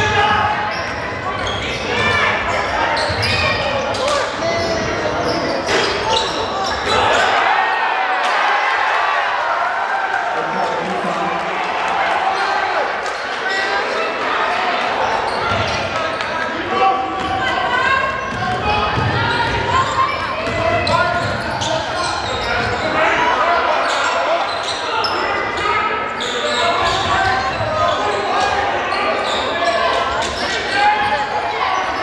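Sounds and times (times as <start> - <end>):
echoing voices in gymnasium: 0.0 - 32.0.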